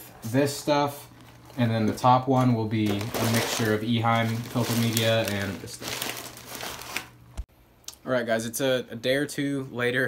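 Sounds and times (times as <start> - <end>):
plastic bag crinkling: 1.1 - 7.4.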